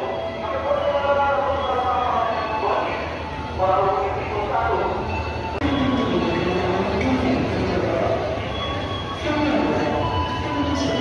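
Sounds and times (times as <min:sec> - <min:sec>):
high squealing of train wheels: 0:00.0 - 0:03.7, 0:04.7 - 0:07.0, 0:07.9 - 0:11.0.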